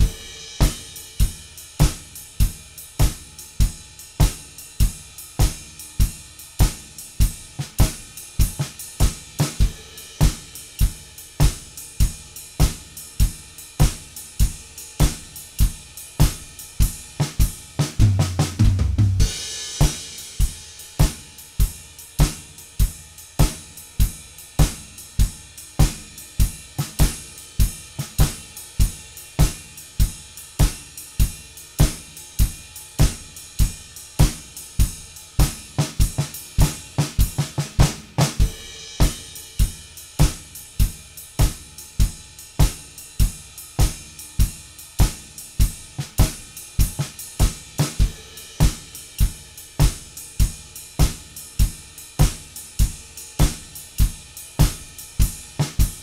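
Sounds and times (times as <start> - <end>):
cymbal crash: 0.0 - 1.4, 19.2 - 21.8, 38.3 - 40.8
drum kit blues groove: 0.0 - 56.0.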